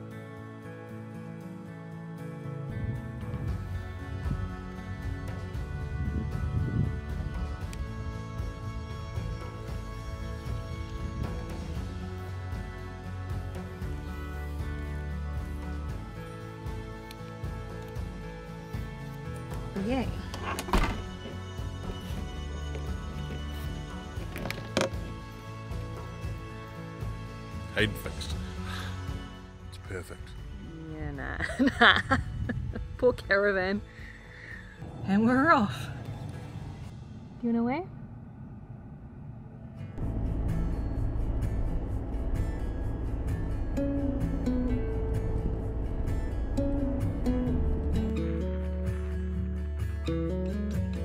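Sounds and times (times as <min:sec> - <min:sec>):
music with beat and plucked melody: 0:02.4 - 0:25.4, 0:41.0 - 0:51.0
window thunking shut: 0:20.4 - 0:21.2
road noise inside moving car: 0:35.2 - 0:48.1.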